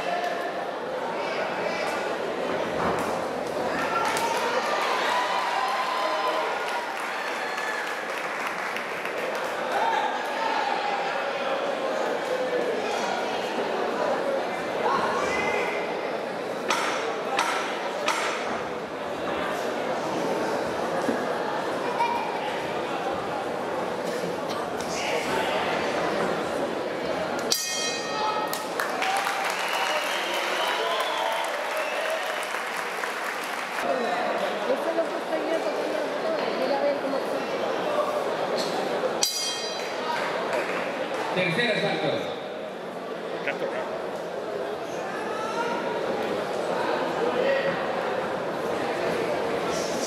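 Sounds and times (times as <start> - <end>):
boxing hall background noise: 0.0 - 50.0
crowd chatter: 0.0 - 50.0
boxing bell ringing: 27.5 - 28.4, 39.2 - 40.0.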